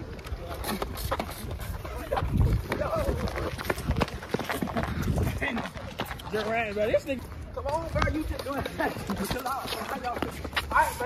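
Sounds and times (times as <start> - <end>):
hurried running footsteps: 0.0 - 11.0.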